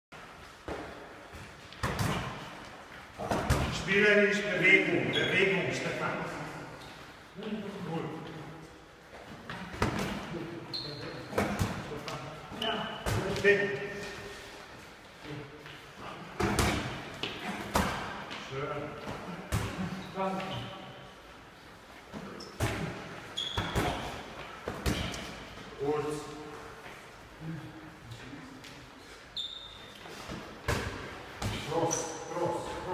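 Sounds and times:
sneaker squeak on wooden floor: 0:23.3 - 0:24.2, 0:29.3 - 0:30.2
brief high squeak: 0:29.4 - 0:30.0.

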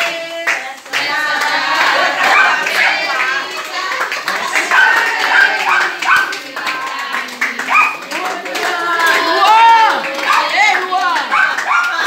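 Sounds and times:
group singing birthday song: 0:00.0 - 0:12.0
hands clapping along: 0:00.0 - 0:12.0.

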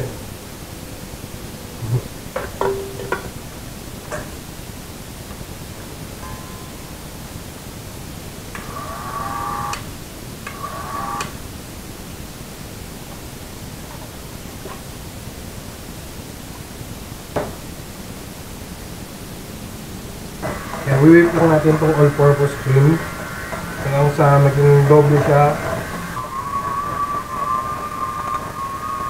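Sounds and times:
steady background hiss: 0:00.0 - 0:29.0.

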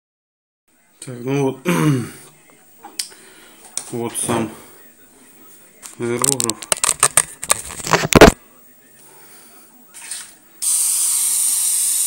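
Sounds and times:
airbrush spraying hiss: 0:10.6 - 0:12.0.

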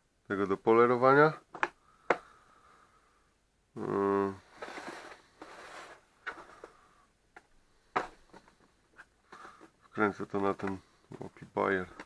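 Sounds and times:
plastic case rustling: 0:04.4 - 0:12.0.

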